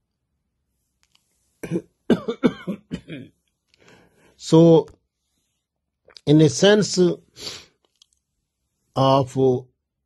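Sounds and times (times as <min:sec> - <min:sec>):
man coughing: 0:01.6 - 0:03.4.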